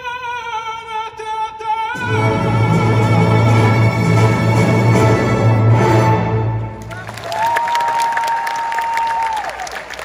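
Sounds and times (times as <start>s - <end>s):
audience applauding: 6.8s - 10.0s.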